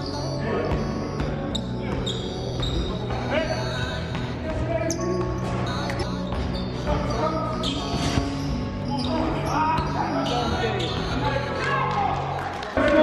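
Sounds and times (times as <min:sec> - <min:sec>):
players' voices: 0:00.0 - 0:13.0.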